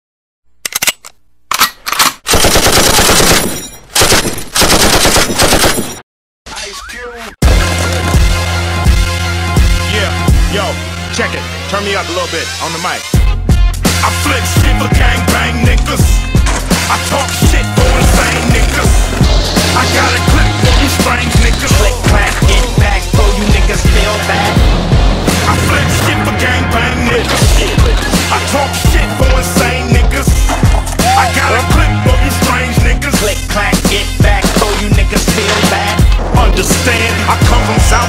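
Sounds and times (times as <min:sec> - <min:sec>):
automatic gunfire: 0:02.3 - 0:06.0
hip-hop backing track: 0:06.6 - 0:38.0.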